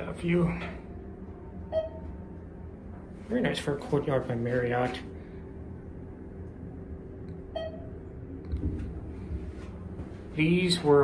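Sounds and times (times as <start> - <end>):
elevator hum: 0.0 - 11.0
short electronic beep: 7.6 - 7.9.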